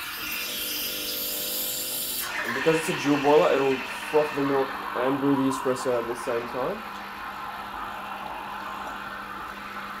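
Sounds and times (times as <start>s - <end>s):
steady hum: 0.7s - 10.0s.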